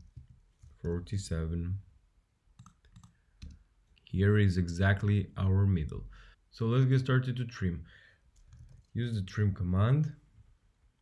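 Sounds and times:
computer mouse or key clicks: 0:02.6 - 0:03.6.

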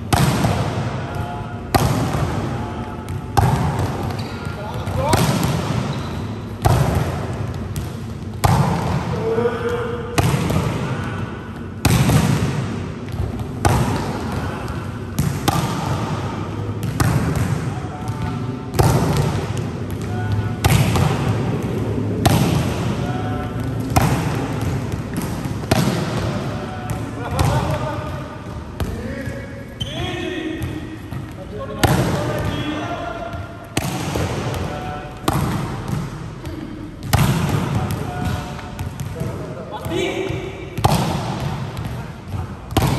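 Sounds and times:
volleyball slapping onto court: 0:00.1 - 0:01.0, 0:01.7 - 0:09.1, 0:10.1 - 0:28.2, 0:33.4 - 0:39.3, 0:39.9 - 0:42.9.

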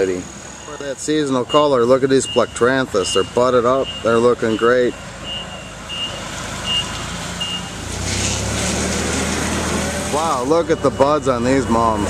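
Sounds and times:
forklift warning beeps: 0:00.0 - 0:07.8, 0:10.2 - 0:12.0
forklift engine rumble: 0:00.0 - 0:12.0.

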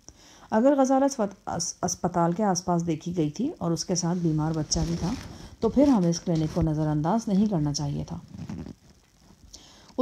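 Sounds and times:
faint noise: 0:00.0 - 0:10.0
woman narrating: 0:00.5 - 0:08.3.

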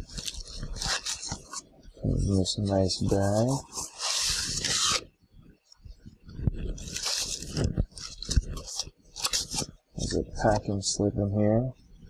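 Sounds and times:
plastic packaging crinkling: 0:00.0 - 0:01.7, 0:06.6 - 0:10.2.

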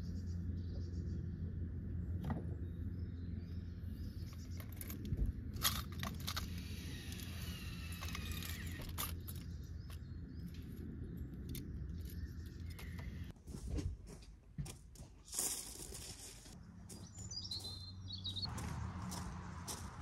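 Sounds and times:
low steady hum: 0:00.0 - 0:13.3.

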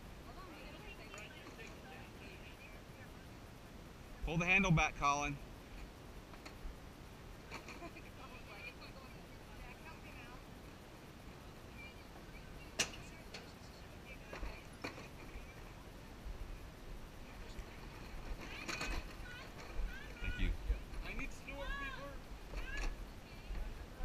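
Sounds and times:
faint distant voices: 0:00.0 - 0:24.0.

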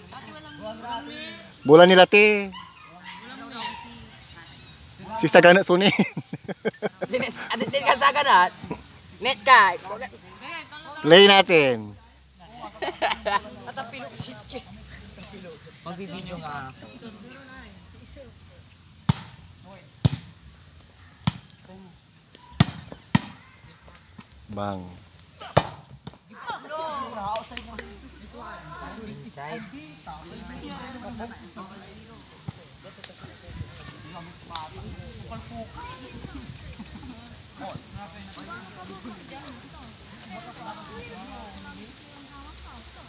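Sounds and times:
volleyball being struck: 0:19.1 - 0:19.4, 0:25.4 - 0:25.9.

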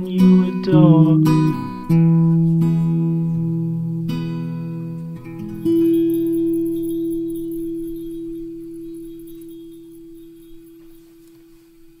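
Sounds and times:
acoustic guitar chord ringing: 0:00.0 - 0:12.0.

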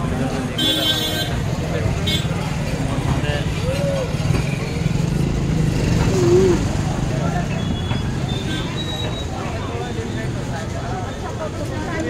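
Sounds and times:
traffic rumble: 0:00.0 - 0:12.0
voices of passers-by: 0:00.0 - 0:12.0.

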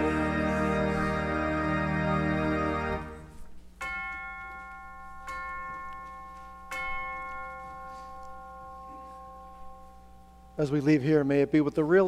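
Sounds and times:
church chimes ringing: 0:03.8 - 0:11.6.

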